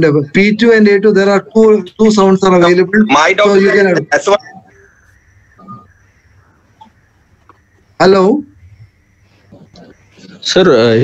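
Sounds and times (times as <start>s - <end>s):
thin high whine: 0.0s - 11.0s.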